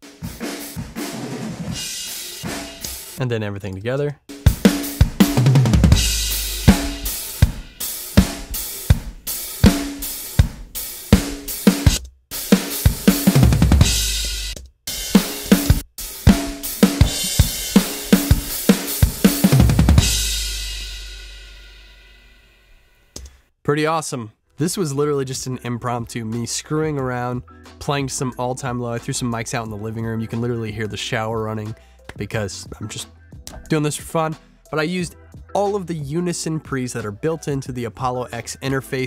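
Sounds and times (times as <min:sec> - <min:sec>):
drum kit groove: 0:00.0 - 0:03.2, 0:04.3 - 0:22.1, 0:32.1 - 0:37.2
ringing final drum hit: 0:04.4 - 0:11.9, 0:15.1 - 0:21.7.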